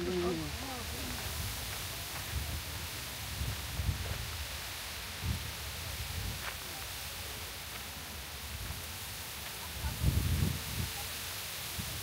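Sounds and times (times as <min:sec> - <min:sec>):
wind buffeting microphone: 0:00.0 - 0:06.4, 0:09.7 - 0:11.0
steady outdoor hiss: 0:00.0 - 0:12.0.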